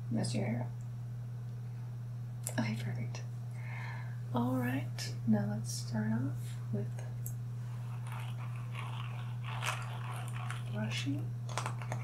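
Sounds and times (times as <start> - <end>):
steady low hum: 0.0 - 12.0
scratchy rustling near microphone: 7.6 - 12.0.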